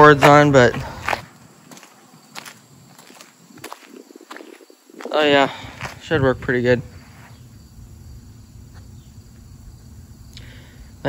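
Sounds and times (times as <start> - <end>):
footsteps on concrete: 0.0 - 6.3.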